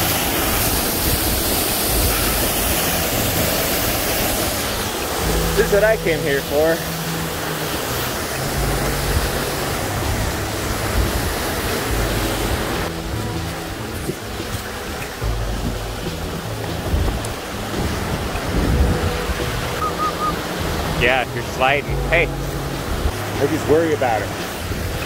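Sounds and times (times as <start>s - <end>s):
creek cascading over rock: 0.0s - 25.0s
wind rumbling on microphone: 7.2s - 21.3s, 24.3s - 25.0s.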